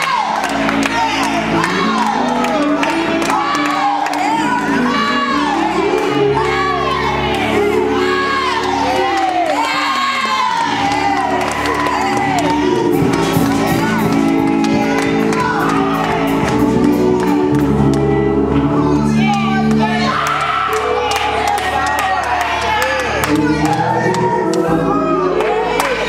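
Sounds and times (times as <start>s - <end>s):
congregation shouting and whooping: 0.0s - 17.5s, 18.8s - 26.0s
music holding sustained chords: 0.0s - 26.0s.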